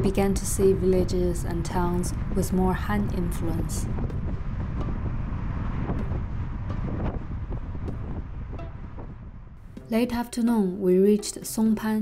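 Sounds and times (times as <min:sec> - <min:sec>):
road noise low rumble: 0:00.0 - 0:10.1
wind buffeting microphone: 0:00.0 - 0:10.1.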